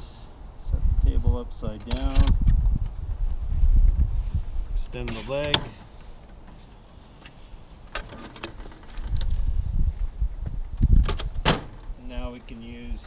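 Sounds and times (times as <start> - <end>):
low rumbling handling noise: 0.7 - 13.0.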